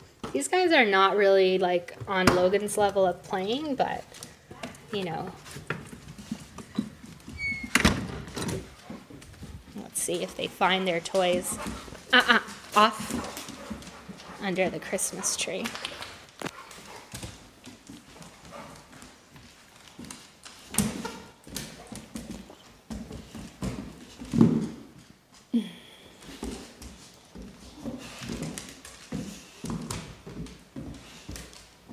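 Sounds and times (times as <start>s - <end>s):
door squeak: 7.4s - 8.6s
dog claws clicking on wood floor: 15.4s - 25.1s.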